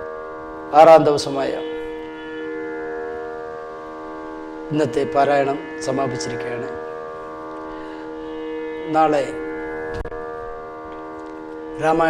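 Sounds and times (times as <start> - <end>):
music drone of held tones: 0.0 - 12.0.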